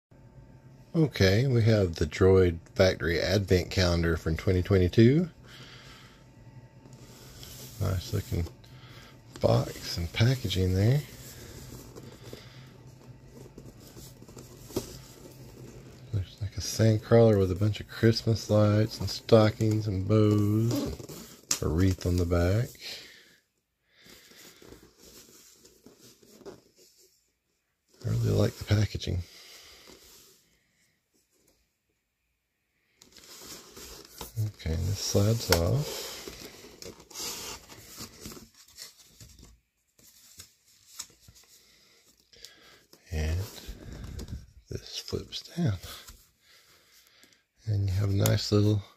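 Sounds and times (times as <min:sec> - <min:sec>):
rustling handling noise: 0:06.7 - 0:23.4, 0:24.0 - 0:31.8, 0:32.9 - 0:48.9.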